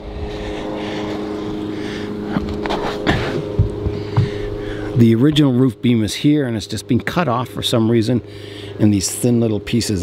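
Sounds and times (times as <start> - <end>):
low hum of held tones: 0.0 - 10.0.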